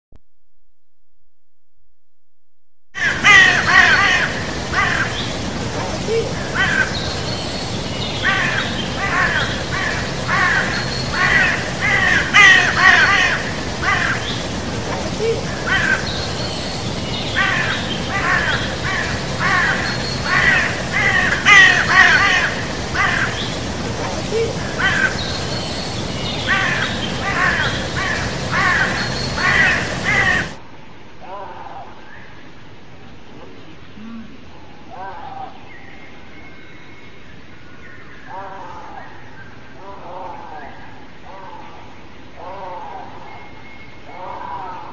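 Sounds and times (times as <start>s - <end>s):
bird harsh caw-like calls: 3.0s - 5.7s, 6.4s - 14.8s, 15.4s - 30.6s.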